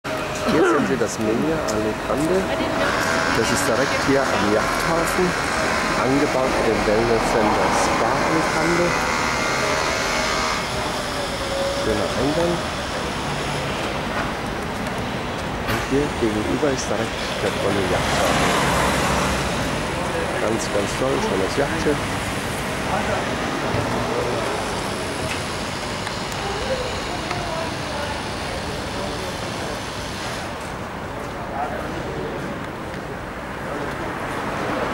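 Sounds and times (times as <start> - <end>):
cars passing: 0.0 - 34.9
faint voices of people: 0.1 - 34.9
traffic hiss: 0.1 - 34.9.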